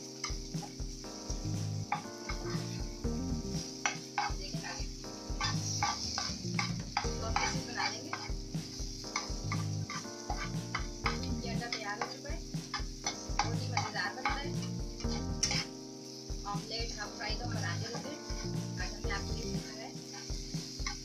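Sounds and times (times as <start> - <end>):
frying oil sizzling: 0.0 - 21.0
metal spatula scraping a pan: 3.8 - 4.8, 5.4 - 15.7, 19.8 - 21.0.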